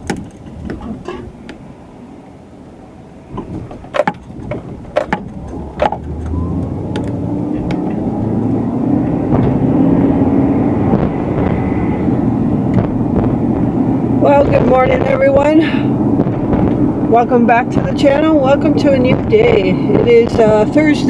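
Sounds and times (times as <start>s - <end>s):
road noise inside car: 0.0s - 21.0s
car engine accelerating: 3.3s - 14.9s
sharp clicks: 3.8s - 7.8s.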